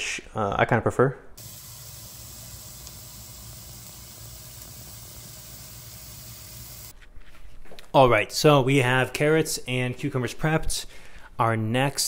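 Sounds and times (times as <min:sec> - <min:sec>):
steady hiss: 0:01.4 - 0:07.0.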